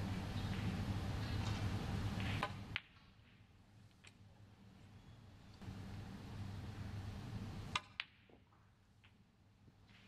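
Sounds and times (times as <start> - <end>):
snooker balls clicking: 1.4 - 4.2.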